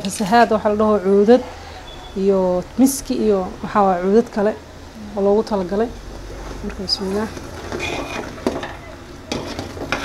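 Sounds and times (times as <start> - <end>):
metal spatula scraping a pot: 7.0 - 10.0.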